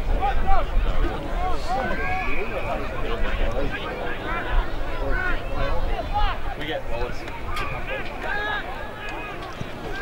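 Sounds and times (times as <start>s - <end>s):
crowd calling and shouting: 0.0s - 10.0s.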